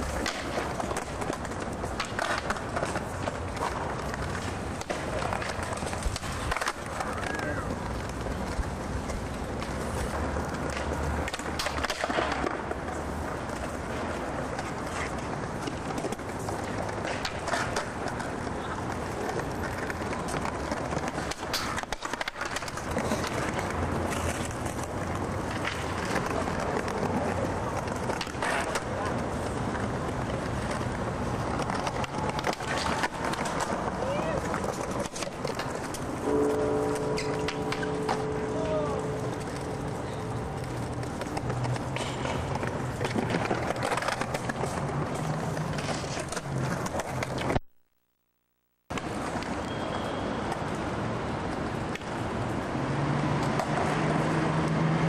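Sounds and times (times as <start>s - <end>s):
skateboard popping and landing: 0.0s - 36.3s, 40.6s - 47.6s
skateboard wheels rolling on stone: 0.0s - 47.7s, 48.9s - 55.0s
city noise: 0.0s - 55.0s
indistinct voices: 36.3s - 40.5s.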